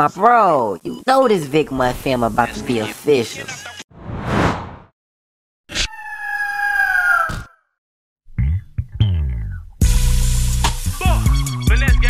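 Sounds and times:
bird of prey screech: 5.7 - 7.7.

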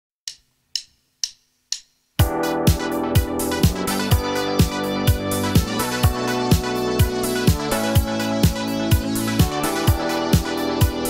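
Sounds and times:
music soundtrack: 0.8 - 11.0.

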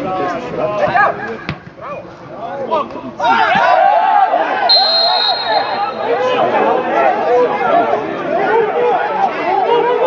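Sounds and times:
referee's whistle blast: 4.7 - 6.2.

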